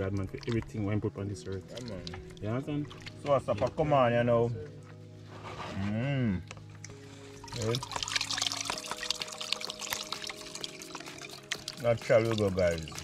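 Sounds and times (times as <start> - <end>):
water pouring into a strainer: 0.0 - 3.2, 7.4 - 13.0.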